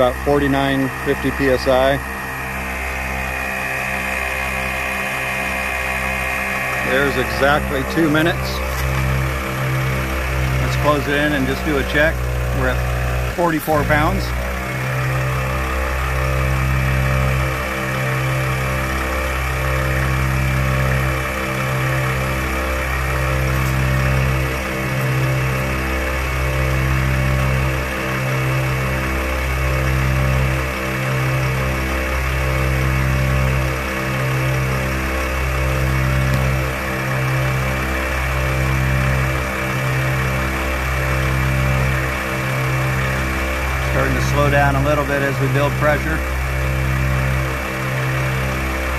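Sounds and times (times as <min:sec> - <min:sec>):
air compressor running: 0:00.0 - 0:48.9.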